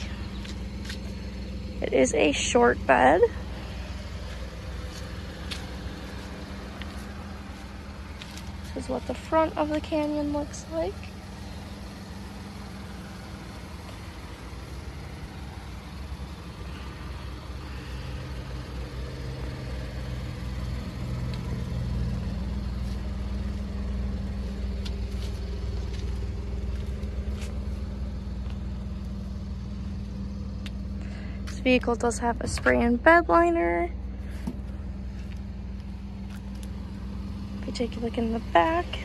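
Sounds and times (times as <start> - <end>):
vehicle engine idling: 0.0 - 39.0.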